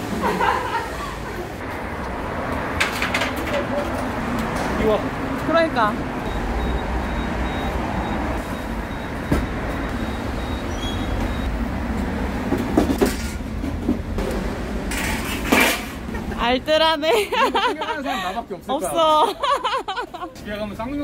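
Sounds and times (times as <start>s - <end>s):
low traffic rumble: 0.0s - 21.0s.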